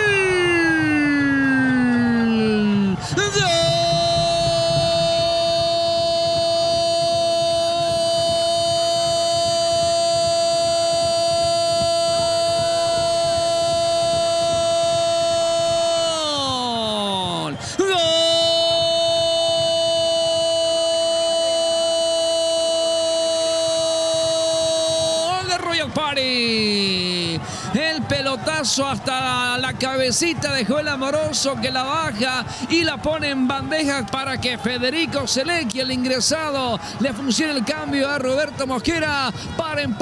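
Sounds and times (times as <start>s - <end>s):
quick breath: 27.4s - 27.7s, 32.5s - 32.7s, 39.3s - 39.6s.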